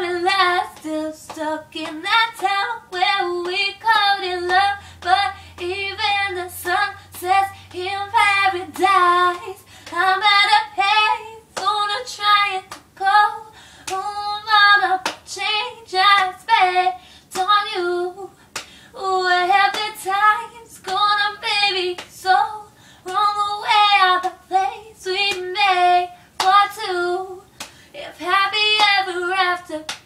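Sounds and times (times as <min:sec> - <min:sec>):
woman singing unaccompanied: 0:00.0 - 0:30.0.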